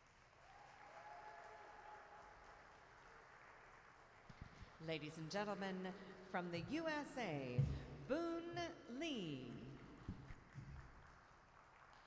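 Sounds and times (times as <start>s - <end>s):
faint applause: 0.0s - 5.3s.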